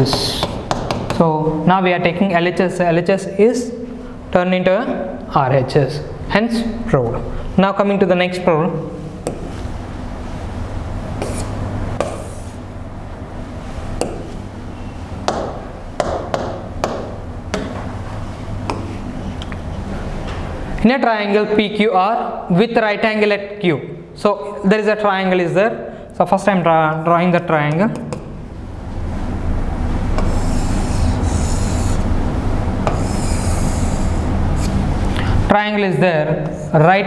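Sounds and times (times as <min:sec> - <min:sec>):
steady low hum: 0:00.0 - 0:37.0
pen drawn across board: 0:11.2 - 0:12.6, 0:30.2 - 0:32.0, 0:32.9 - 0:34.8.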